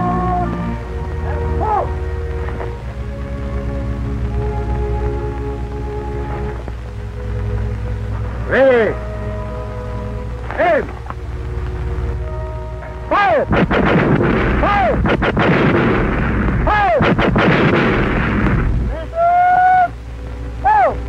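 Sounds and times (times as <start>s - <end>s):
loud rumbling noise: 11.1s - 19.2s
gunshots: 13.4s - 19.0s.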